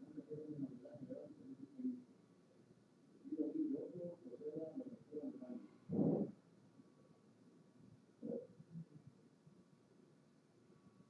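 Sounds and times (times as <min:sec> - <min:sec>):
muffled voice speaking: 0:00.0 - 0:02.1, 0:03.2 - 0:06.3.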